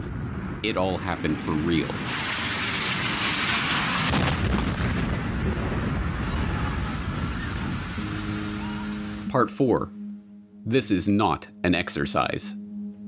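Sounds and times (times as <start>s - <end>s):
jet airliner engines roaring overhead: 0.0s - 8.8s.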